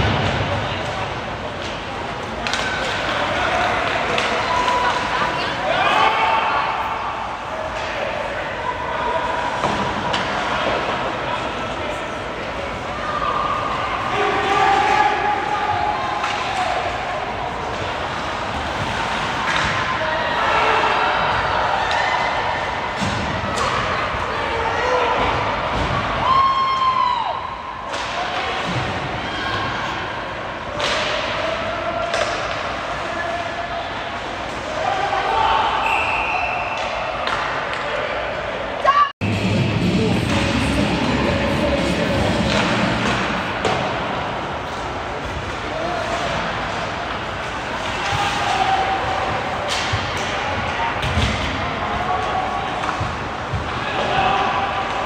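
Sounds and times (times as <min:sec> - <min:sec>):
hockey sticks and puck hitting boards: 0:00.0 - 0:05.1, 0:09.5 - 0:11.2, 0:16.1 - 0:20.0, 0:30.7 - 0:33.0, 0:40.1 - 0:55.0
players shouting: 0:02.5 - 0:55.0.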